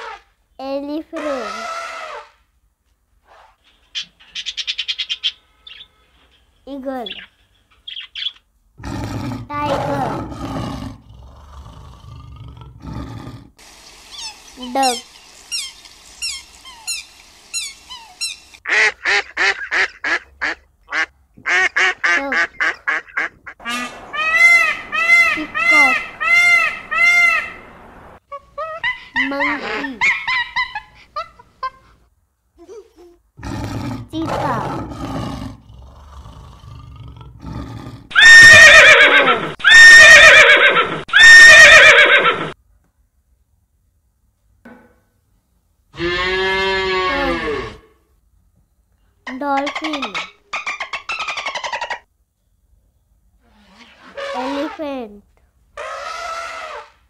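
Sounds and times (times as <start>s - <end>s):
loud animal calls: 1.2s - 2.4s, 21.5s - 27.8s, 37.1s - 42.6s, 53.5s - 54.8s, 55.8s - 57.0s
monkey calls: 14.1s - 18.6s, 22.3s - 27.6s, 28.3s - 31.8s, 49.3s - 52.0s
goslings peeping: 21.5s - 27.6s.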